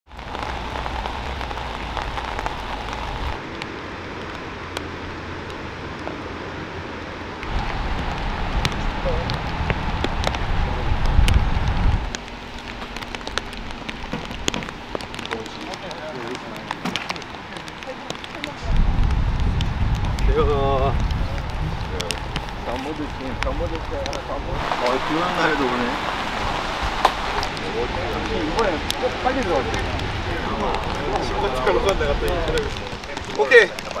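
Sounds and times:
low rumble: 0.1 - 15.2, 18.6 - 33.3
rain patter on a canopy: 0.1 - 34.0.

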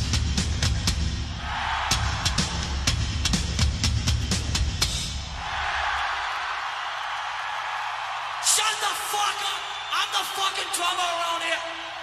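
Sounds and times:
crowd cheering and applauding: 1.4 - 3.2, 5.2 - 12.0.

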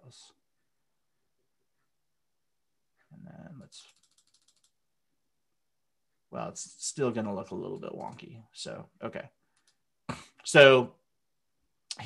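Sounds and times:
mouse scroll wheel ticking: 3.8 - 4.8, 9.5 - 9.8.

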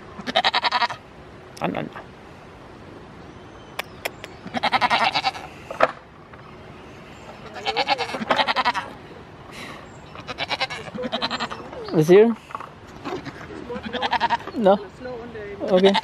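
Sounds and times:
goats bleating: 0.2 - 1.0, 4.5 - 5.5, 7.4 - 9.0, 10.2 - 11.7, 13.0 - 14.6, 15.6 - 16.0.

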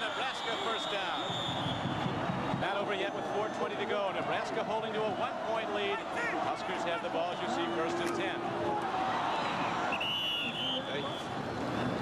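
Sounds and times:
football commentary voices: 0.0 - 1.4, 2.5 - 8.8
background crowd din: 0.0 - 12.0.

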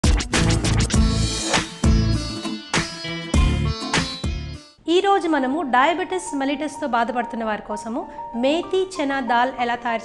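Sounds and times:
television theme music: 0.0 - 4.8.

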